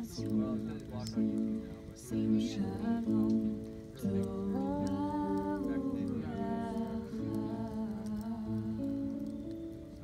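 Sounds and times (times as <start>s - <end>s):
wood fire crackling: 0.0s - 10.0s
women humming a slow melody: 2.0s - 10.0s.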